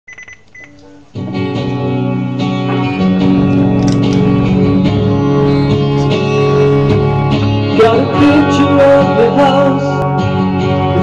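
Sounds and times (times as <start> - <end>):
guitar music: 0.7 - 11.0.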